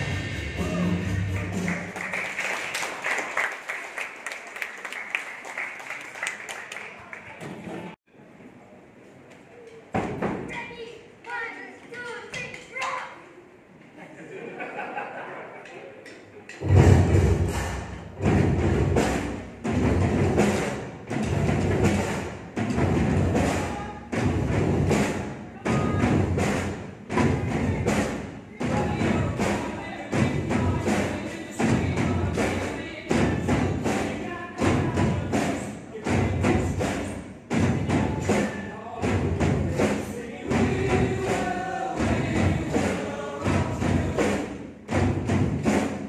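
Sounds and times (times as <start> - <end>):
drum kits playing in unison: 0.0 - 2.5, 16.3 - 46.0
music with singing: 27.2 - 44.6.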